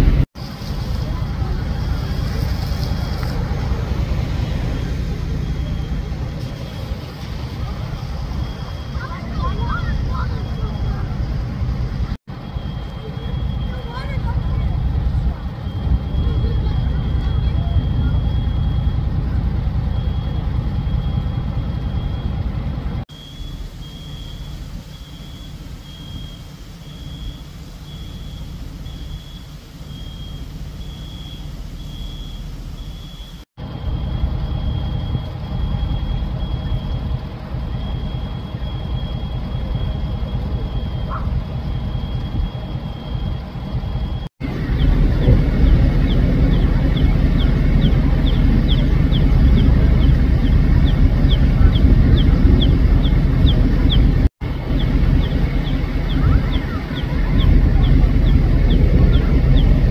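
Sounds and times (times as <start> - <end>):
traffic rumble: 0.0 - 59.9
wind: 0.0 - 59.9
high-pitched electronic alarm beeping: 7.6 - 11.3, 12.3 - 22.5, 23.1 - 44.3.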